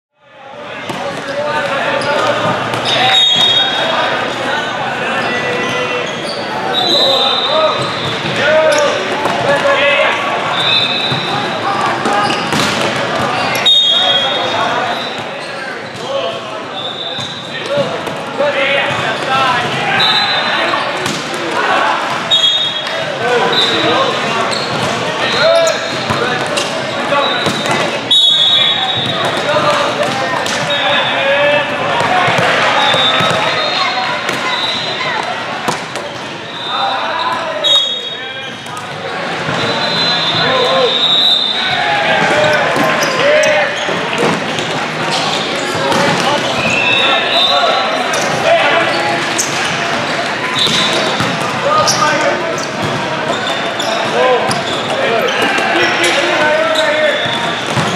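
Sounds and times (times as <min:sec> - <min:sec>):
babble of players and spectators: 0:00.2 - 0:57.9.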